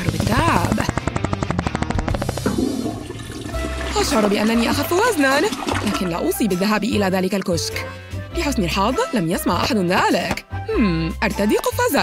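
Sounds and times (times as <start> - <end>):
toilet flushing: 2.4 - 6.3.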